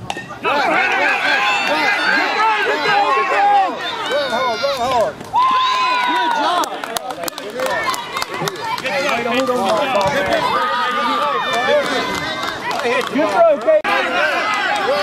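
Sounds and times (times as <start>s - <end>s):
children cheering and yelling: 0.3s - 6.8s, 7.5s - 15.0s.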